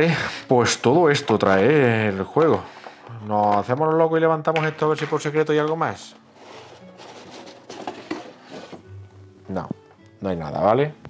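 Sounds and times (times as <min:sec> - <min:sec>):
plastic scraping against cardboard: 0:05.2 - 0:08.9.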